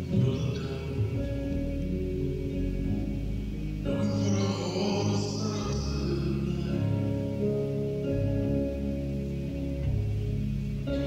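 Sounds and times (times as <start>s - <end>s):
live small band music: 0.0s - 11.0s.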